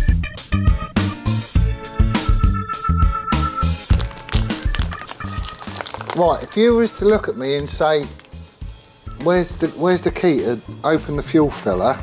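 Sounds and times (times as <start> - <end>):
drums and guitar music: 0.0 - 5.5.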